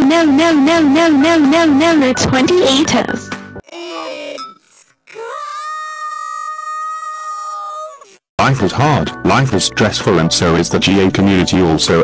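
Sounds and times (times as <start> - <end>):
cartoon character's long high cry: 5.1 - 8.2.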